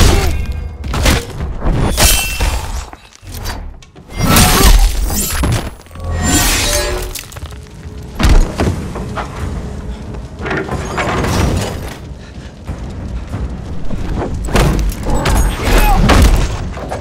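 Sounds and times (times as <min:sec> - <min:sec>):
music: 0:00.0 - 0:17.0.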